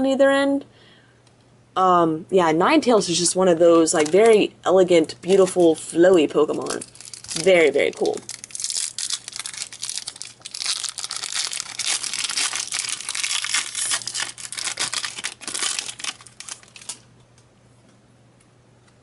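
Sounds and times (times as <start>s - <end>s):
foil wrapper tearing and crinkling: 6.4s - 17.1s.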